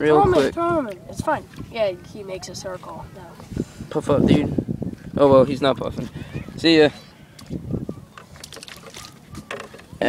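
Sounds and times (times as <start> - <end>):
faint lapping water: 0.0 - 4.2, 4.9 - 10.0.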